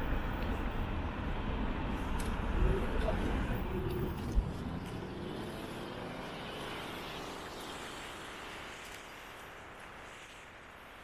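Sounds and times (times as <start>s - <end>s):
passing cars rushing: 0.0s - 10.1s.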